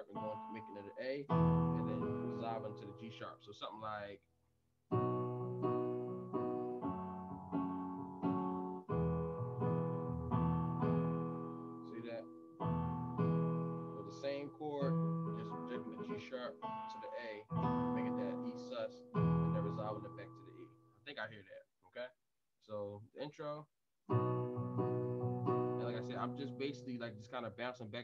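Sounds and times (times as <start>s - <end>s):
piano chord stabs: 0.0s - 3.0s, 5.0s - 20.6s, 24.1s - 27.5s.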